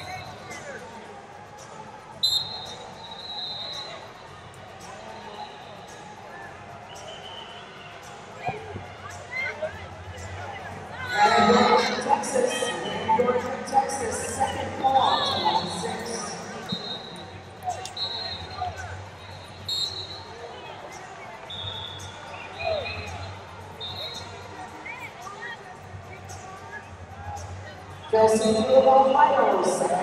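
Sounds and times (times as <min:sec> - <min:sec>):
coaches and spectators shouting: 0:00.0 - 0:30.0.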